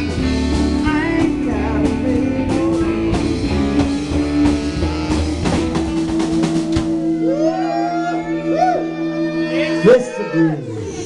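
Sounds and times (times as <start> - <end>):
bending lead guitar line: 0.0 - 11.0
rock band sustained chord: 0.0 - 11.0.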